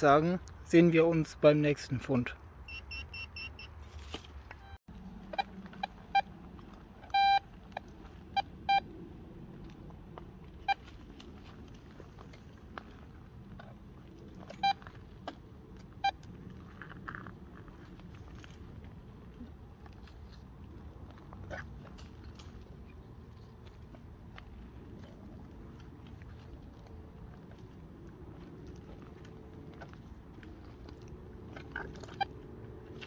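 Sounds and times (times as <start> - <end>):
metal detector beeping: 2.6 - 3.8, 4.5 - 6.3, 7.0 - 8.9, 14.5 - 14.8.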